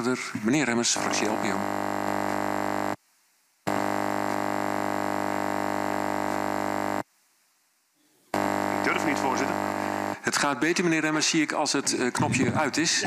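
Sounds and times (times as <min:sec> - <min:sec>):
microphone electrical hum: 0:00.1 - 0:10.3.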